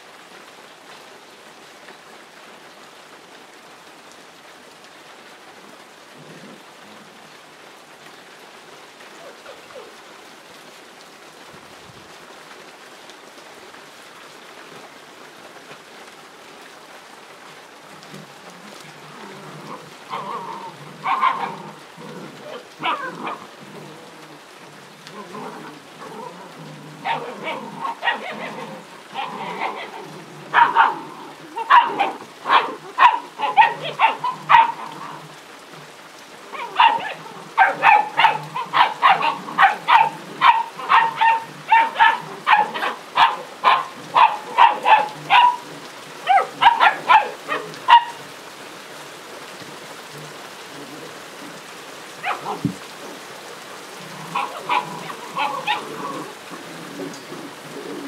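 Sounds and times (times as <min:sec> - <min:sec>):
rain patter: 0:00.0 - 0:58.0
puppies yapping: 0:19.6 - 0:23.5, 0:27.0 - 0:35.1, 0:36.5 - 0:48.2, 0:52.2 - 0:52.7, 0:54.3 - 0:56.4.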